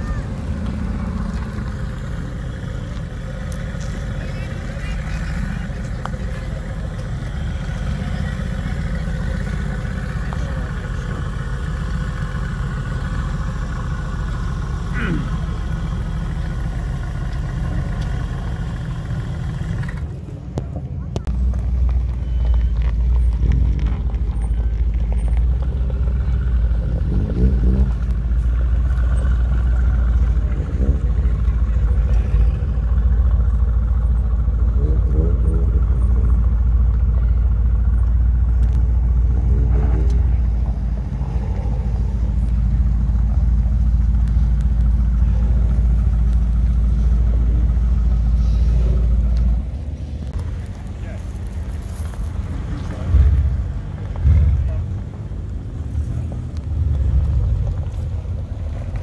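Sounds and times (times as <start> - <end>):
people talking: 0.0 - 1.8, 2.6 - 12.2, 15.0 - 15.7, 20.3 - 21.6, 34.6 - 41.8, 50.4 - 51.6, 54.3 - 55.1
car engine idling: 0.0 - 59.0.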